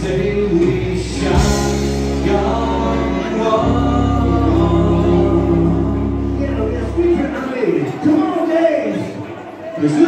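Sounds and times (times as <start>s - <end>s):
person singing: 0.0s - 7.3s
country-rock band playing: 0.0s - 8.5s.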